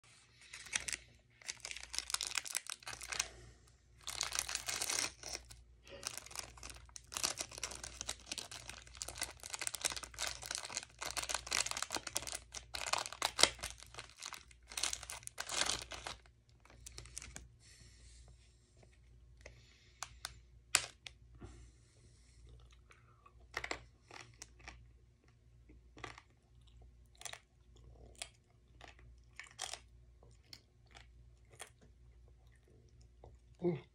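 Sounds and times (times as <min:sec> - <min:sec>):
wrapper tearing and crinkling: 0:00.4 - 0:03.3, 0:04.0 - 0:17.4.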